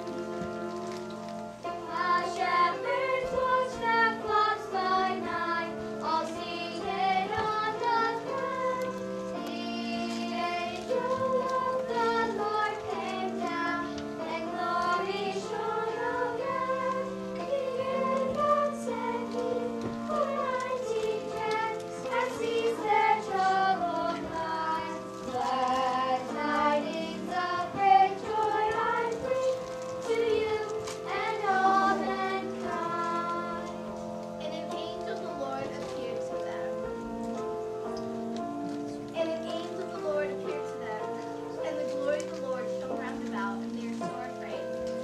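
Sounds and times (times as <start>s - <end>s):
children singing: 1.9s - 34.0s.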